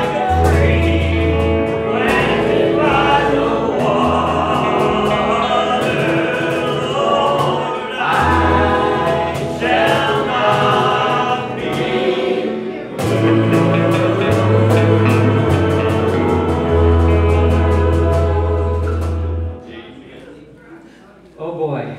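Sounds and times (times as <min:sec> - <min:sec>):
choir of men and women singing: 0:00.0 - 0:19.6
acoustic guitar: 0:00.0 - 0:20.4
keyboard: 0:00.0 - 0:20.6.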